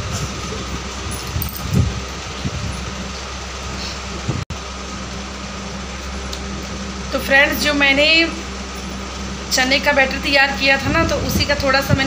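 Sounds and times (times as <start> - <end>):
mechanical hum with low drone: 0.0 - 12.0.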